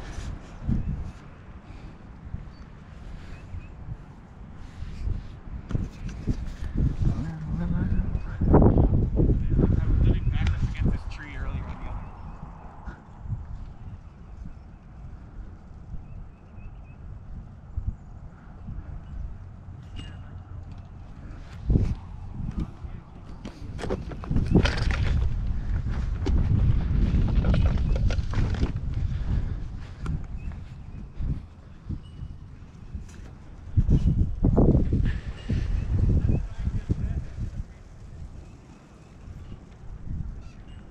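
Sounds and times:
wind rumbling on microphone: 0:00.0 - 0:40.9
camera handling knocks and rustling: 0:23.3 - 0:25.3.

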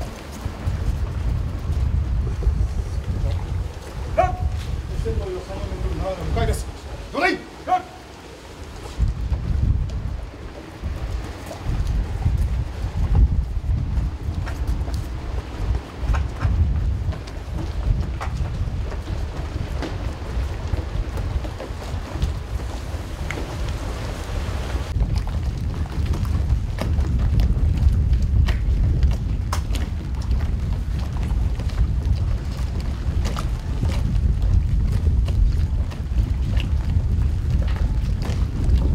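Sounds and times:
wind buffeting microphone: 0:00.0 - 0:38.9.

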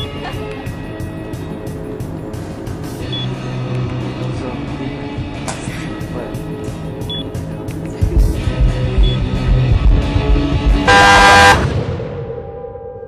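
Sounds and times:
background music: 0:00.0 - 0:13.0
car horn blaring: 0:10.9 - 0:11.7.

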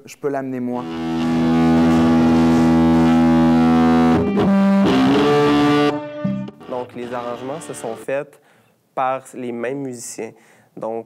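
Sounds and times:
electric guitar sustained chord: 0:00.8 - 0:08.0.

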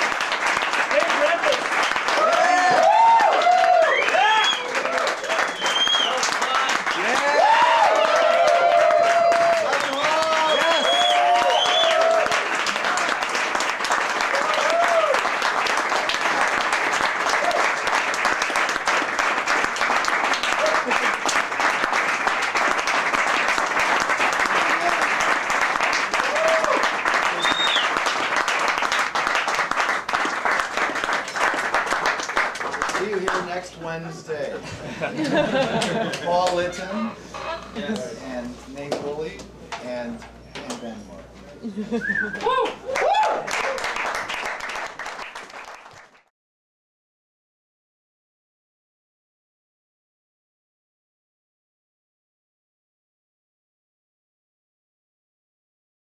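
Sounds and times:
audience applauding: 0:00.0 - 0:33.6, 0:42.0 - 0:46.3
whoops and cheering shouts: 0:02.1 - 0:05.1, 0:07.1 - 0:12.4, 0:14.3 - 0:15.2, 0:26.2 - 0:27.8, 0:42.0 - 0:43.9.

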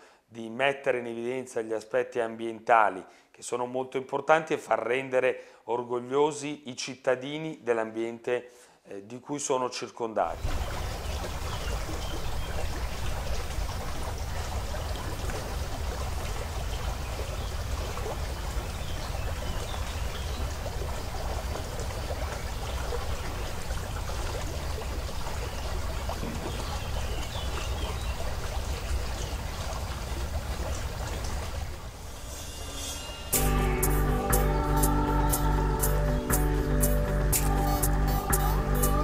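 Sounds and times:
spring water flowing: 0:10.4 - 0:39.0.

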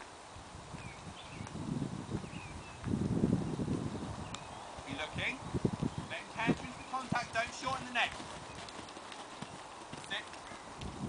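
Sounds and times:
horse hoofbeats cantering: 0:05.8 - 0:11.0.

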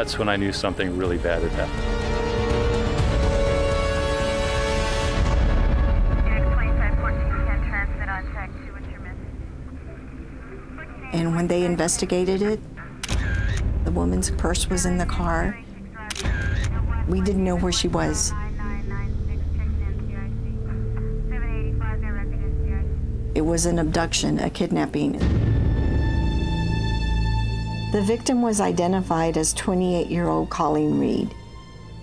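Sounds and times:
low droning hum: 0:00.0 - 0:32.0
low rumble: 0:00.0 - 0:32.0
voice fragments: 0:06.1 - 0:24.4.

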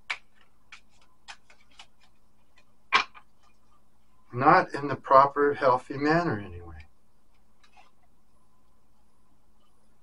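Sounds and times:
cards snapping and tapping: 0:00.0 - 0:03.2.

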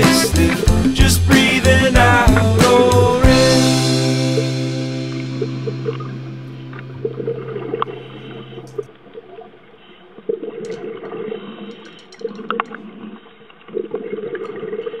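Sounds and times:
music track: 0:00.0 - 0:09.5
underwater bubbling and gurgling: 0:06.7 - 0:15.0.

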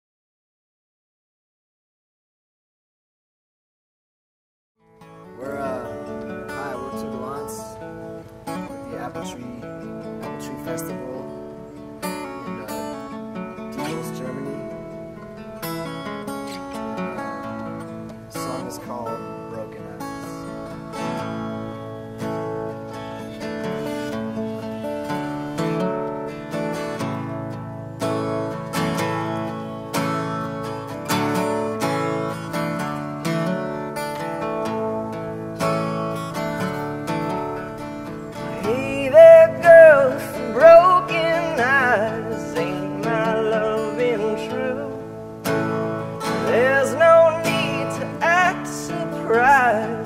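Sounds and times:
acoustic guitar strumming: 0:04.8 - 0:50.0.

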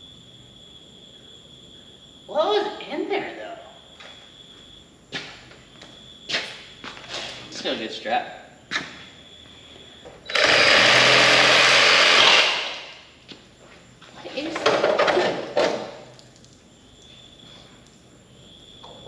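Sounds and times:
power tool running: 0:10.3 - 0:12.9.

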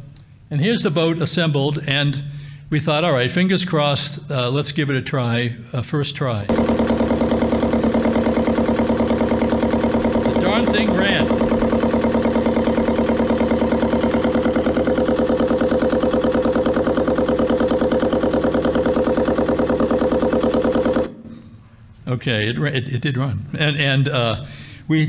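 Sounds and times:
diesel engine idling: 0:06.5 - 0:21.1.

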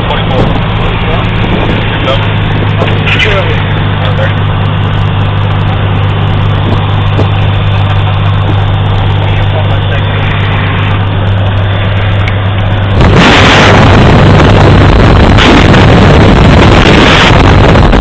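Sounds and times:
propeller aircraft engine humming: 0:00.0 - 0:18.0
wind hitting microphone: 0:00.0 - 0:18.0.

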